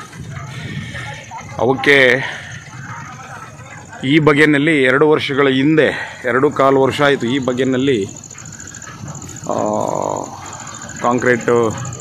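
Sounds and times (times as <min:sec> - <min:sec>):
faint outdoor background noise: 0:00.0 - 0:12.0
animal call: 0:07.0 - 0:12.0.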